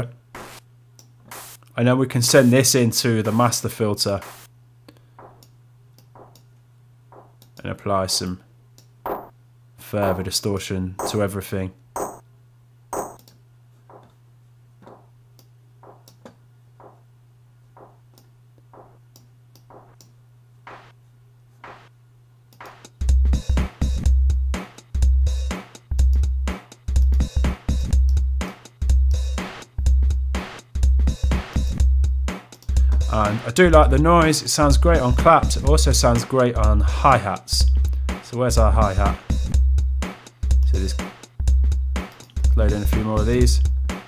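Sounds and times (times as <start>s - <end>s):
distorted kick drum loop: 0.4s - 0.6s, 2.3s - 3.6s, 4.2s - 4.5s, 7.2s - 7.4s, 10.0s - 10.3s, 11.0s - 11.3s, 12.0s - 12.2s, 13.0s - 13.2s, 15.8s - 16.0s, 18.8s - 19.0s, 19.7s - 20.0s, 20.7s - 20.9s, 21.6s - 21.9s, 22.6s - 44.0s
synthesized clap: 0.4s - 0.6s, 4.2s - 4.5s, 6.2s - 6.4s, 15.8s - 16.2s, 18.8s - 19.0s, 19.6s - 20.0s, 20.7s - 21.0s, 21.6s - 21.9s, 22.6s - 22.9s.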